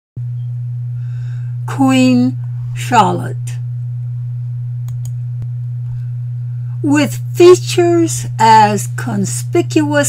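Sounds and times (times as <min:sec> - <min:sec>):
steady low hum: 0:00.2 - 0:10.0
faint clicks: 0:04.8 - 0:05.2.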